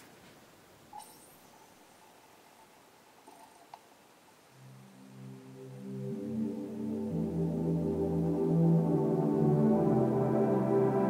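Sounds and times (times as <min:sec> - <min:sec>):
ambient music chords: 0:04.5 - 0:11.0.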